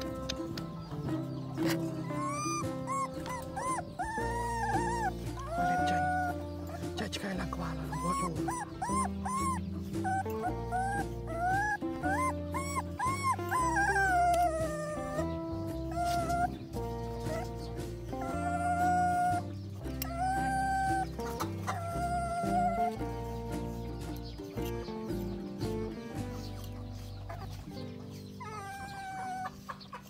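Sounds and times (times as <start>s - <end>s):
background music with bass line: 0.0s - 30.0s
puppy whimpering and crying: 1.3s - 23.8s, 25.8s - 30.0s.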